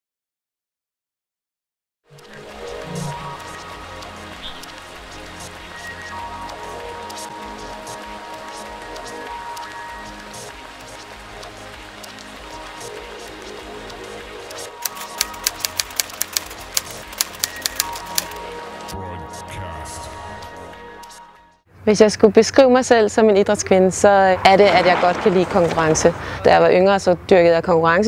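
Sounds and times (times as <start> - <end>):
background music with held notes: 2.1 - 21.7
sharp clicks: 8.3 - 18.5.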